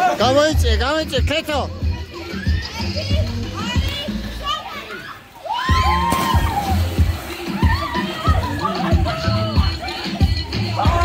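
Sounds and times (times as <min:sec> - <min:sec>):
music with bass beat: 0:00.5 - 0:04.4, 0:05.7 - 0:11.0
children and adults shouting: 0:02.0 - 0:11.0.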